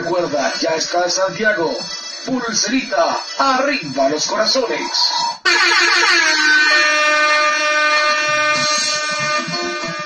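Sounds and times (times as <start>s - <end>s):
synthesized horn-like tone: 5.4s - 10.0s.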